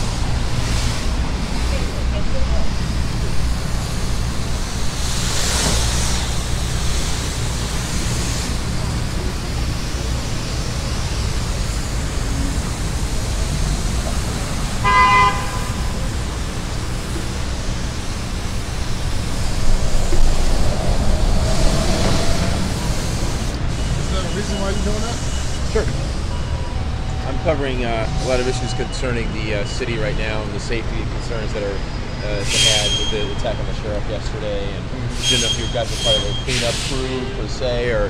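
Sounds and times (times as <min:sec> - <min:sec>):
pressure washer spraying concrete: 0:00.0 - 0:25.8
street traffic rumble: 0:00.0 - 0:38.0
vehicle horn toot: 0:14.8 - 0:16.1.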